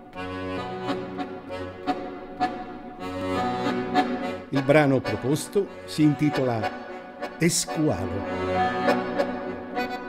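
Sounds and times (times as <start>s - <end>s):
button accordion chords: 0.0s - 10.0s.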